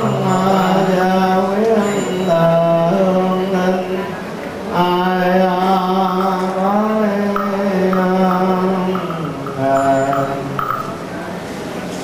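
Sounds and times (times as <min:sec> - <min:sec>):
monk chanting: 0:00.0 - 0:10.9.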